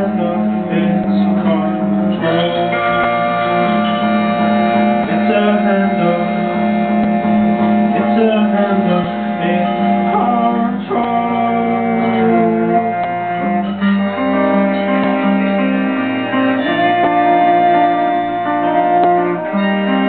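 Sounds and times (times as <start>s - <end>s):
electric guitar playing: 0.0s - 20.0s
live folk band music: 0.0s - 20.0s
long held melody notes: 0.0s - 20.0s.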